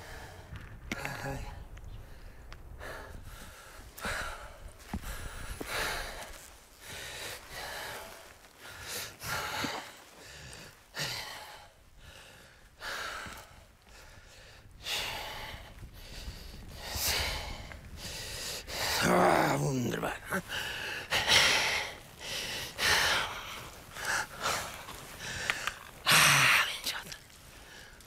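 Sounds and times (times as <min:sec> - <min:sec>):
person breathing hard: 0:01.5 - 0:19.2, 0:20.3 - 0:28.0.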